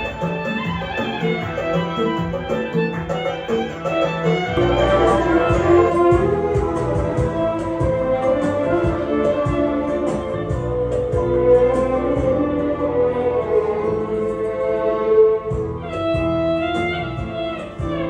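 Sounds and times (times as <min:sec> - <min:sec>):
high ticking beat: 0:00.0 - 0:11.6
backing track with bass line: 0:00.0 - 0:18.0
electric violin melody: 0:00.0 - 0:18.0.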